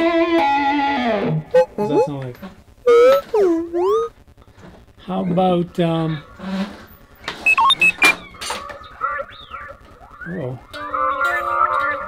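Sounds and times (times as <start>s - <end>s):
robot chirping and whistling: 1.5s - 2.2s, 2.9s - 4.1s, 7.4s - 8.2s.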